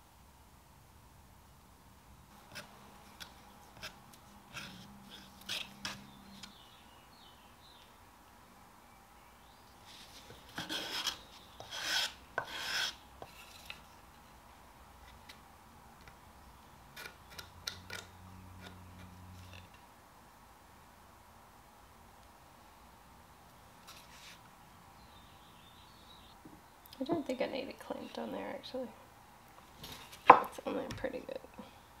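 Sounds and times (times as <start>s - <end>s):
putty knife scraping wooden board: 10.5s - 13.8s.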